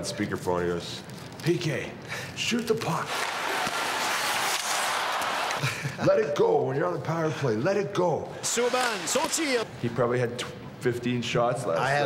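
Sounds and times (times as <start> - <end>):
arena crowd noise: 3.0 - 5.6.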